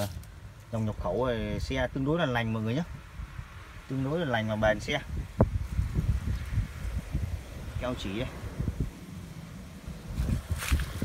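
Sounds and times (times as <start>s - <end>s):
wind buffeting microphone: 0.0s - 11.0s
handling rustles: 10.1s - 11.0s.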